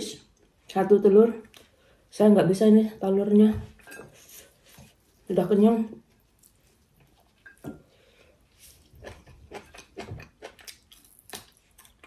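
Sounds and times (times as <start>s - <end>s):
person chewing: 6.2s - 12.0s.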